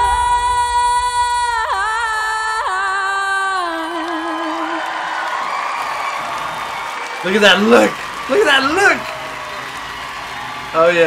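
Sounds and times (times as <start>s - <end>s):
woman singing high note: 0.0s - 5.1s
audience cheering and whooping: 3.6s - 11.0s.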